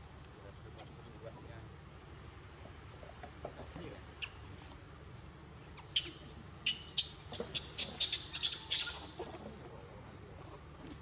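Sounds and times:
insects droning: 0:00.0 - 0:11.0
bird chirping rapidly: 0:05.9 - 0:09.0.

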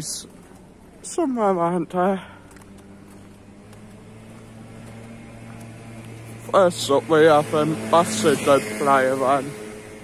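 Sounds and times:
truck engine humming: 0:00.0 - 0:10.0.

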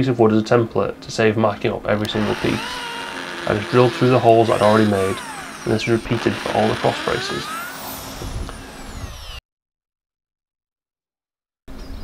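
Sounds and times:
power drill whine winding down: 0:01.9 - 0:09.4.

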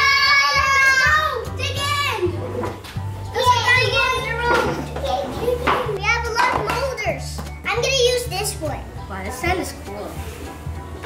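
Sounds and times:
children talking and exclaiming: 0:00.0 - 0:10.8
background music with bass line: 0:00.0 - 0:11.0.

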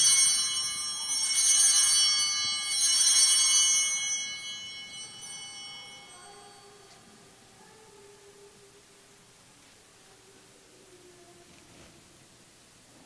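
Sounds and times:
altar bells ringing: 0:00.0 - 0:07.6.

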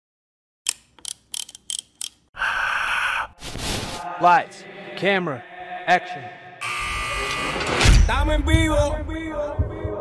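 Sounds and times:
steady buzzing noise: 0:06.6 - 0:08.0.

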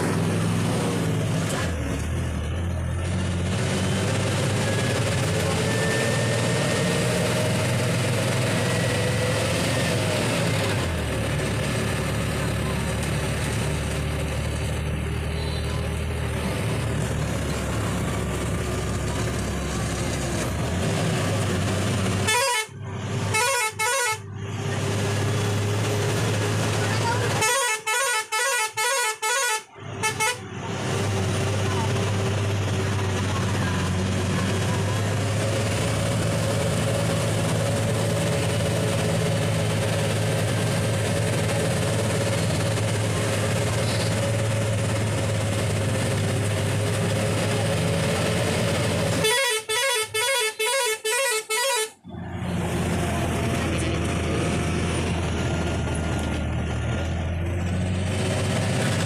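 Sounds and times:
bus engine under load: 0:00.0 - 0:59.0
bus horn toots: 0:15.2 - 0:15.9, 0:22.1 - 0:24.3, 0:27.0 - 0:30.5, 0:48.8 - 0:52.1.

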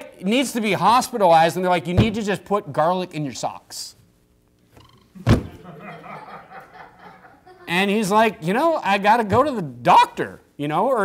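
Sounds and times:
sharp thump: 0:05.2 - 0:05.6
quiet laughter: 0:05.4 - 0:07.7.

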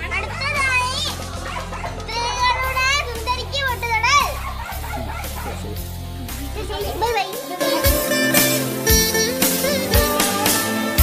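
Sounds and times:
children calling out: 0:00.0 - 0:10.8
music with steady bass line: 0:00.0 - 0:11.0.

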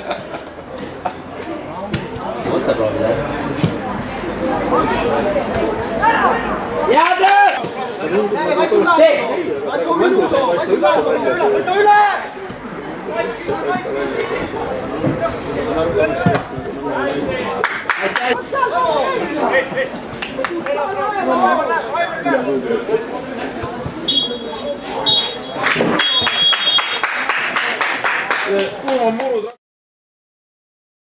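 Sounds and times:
voices talking and shouting: 0:00.0 - 0:29.6.

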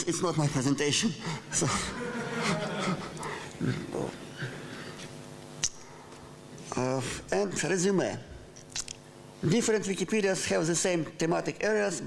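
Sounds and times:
man chuckling: 0:01.3 - 0:04.6.

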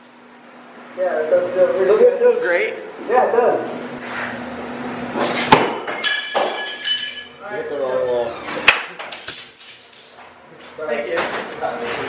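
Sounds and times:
glass smashing: 0:06.0 - 0:07.3, 0:08.7 - 0:10.3
tinkling glass fragments: 0:09.1 - 0:10.3.

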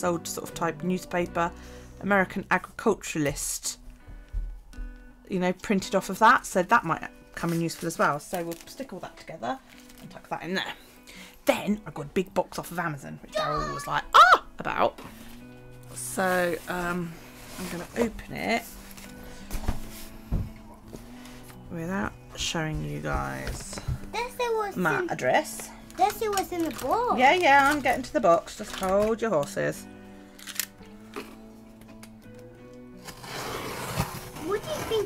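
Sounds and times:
background music: 0:00.0 - 0:35.0
child's voice: 0:13.3 - 0:14.0, 0:24.1 - 0:25.1, 0:26.0 - 0:27.2, 0:34.4 - 0:35.0.

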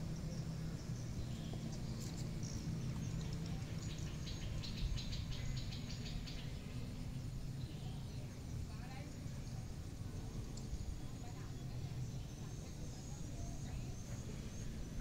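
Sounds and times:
distant traffic hum: 0:00.0 - 0:15.0.

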